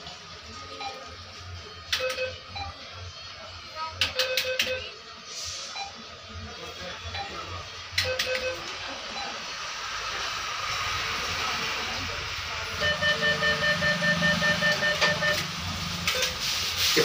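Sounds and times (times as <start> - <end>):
cash dispenser counting notes: 12.8 - 17.0.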